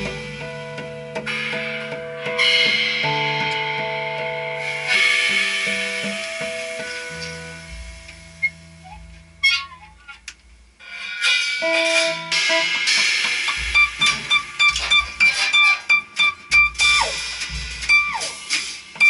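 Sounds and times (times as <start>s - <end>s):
drum kit and cymbals: 0.0s - 19.0s.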